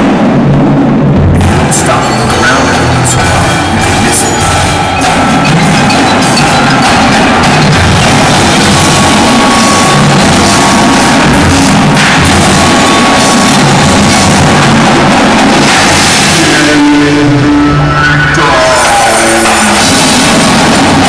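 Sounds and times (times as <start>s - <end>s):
snare drums: 0.0s - 17.4s, 18.7s - 21.0s
drum kit: 0.0s - 21.0s
tenor and bass drums: 0.0s - 21.0s.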